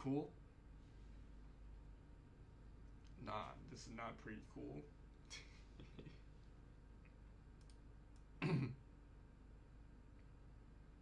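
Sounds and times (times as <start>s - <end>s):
faint clicks: 7.0s - 8.3s.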